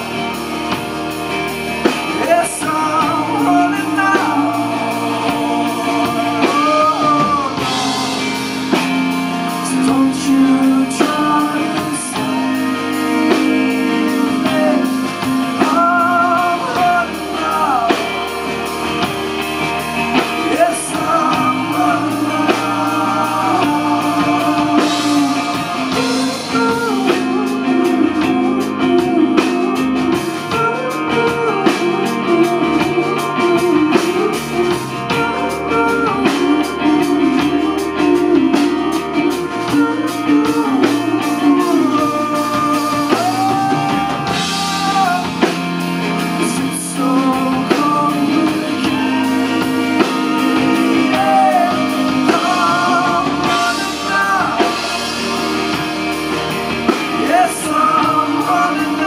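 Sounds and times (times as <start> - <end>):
bass guitar: 0.0 - 59.0
drum kit: 0.0 - 59.0
electric guitar: 0.0 - 59.0
man singing: 1.8 - 59.0.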